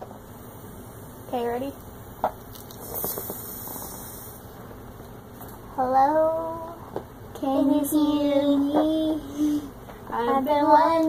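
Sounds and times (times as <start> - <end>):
soft hiss of helium: 0.2 - 4.6.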